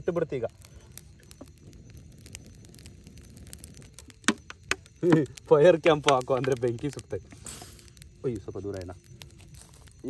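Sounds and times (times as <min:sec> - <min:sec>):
campfire crackling: 0:00.0 - 0:10.0
fire pops: 0:00.0 - 0:10.0.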